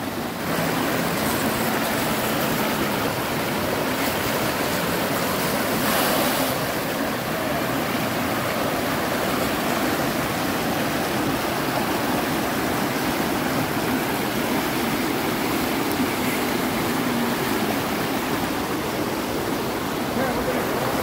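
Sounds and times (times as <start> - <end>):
creek water rushing over rocks: 0.0 - 21.0.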